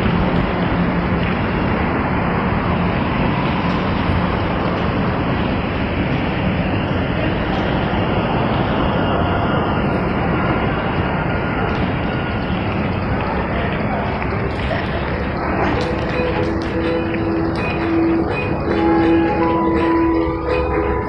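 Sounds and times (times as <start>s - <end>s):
loud rushing mall ambience: 0.0s - 21.0s.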